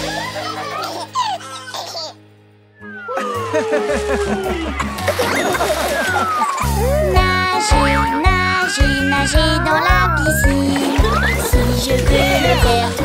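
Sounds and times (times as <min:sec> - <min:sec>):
baby giggling: 0:00.0 - 0:02.2, 0:03.0 - 0:13.0
children's cartoon music: 0:00.0 - 0:13.0
children's song with bouncy bass: 0:02.8 - 0:13.0.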